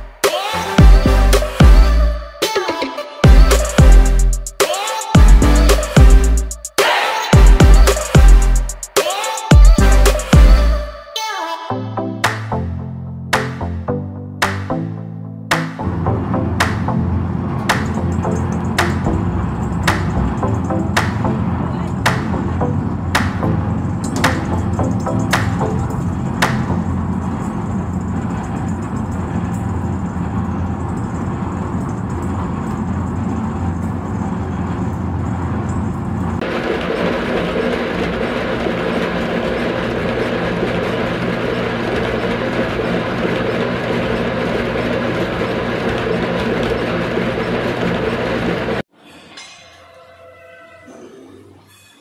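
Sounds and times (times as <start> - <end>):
background music: 0.0 - 27.0.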